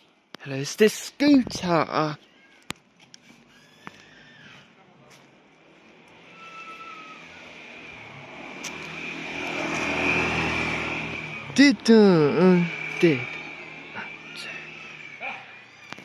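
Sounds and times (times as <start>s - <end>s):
scooter engine approaching: 5.7s - 16.0s
high whine: 7.5s - 15.2s.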